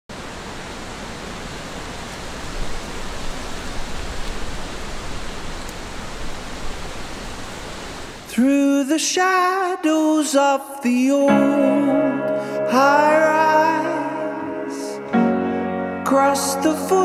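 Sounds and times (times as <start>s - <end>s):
steady rushing hiss: 0.1s - 8.4s.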